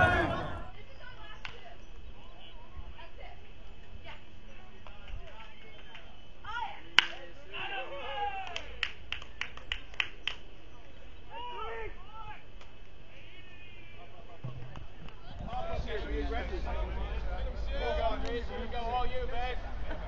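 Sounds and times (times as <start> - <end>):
people shouting: 0.0 - 0.7
baseball bat crack: 6.9 - 7.3
hand claps: 7.0 - 7.2, 8.4 - 10.4.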